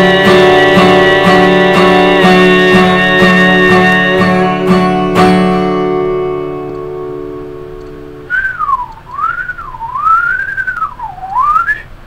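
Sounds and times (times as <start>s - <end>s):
acoustic guitar chord: 0.0s - 10.6s
man whistling a tune: 8.3s - 11.9s.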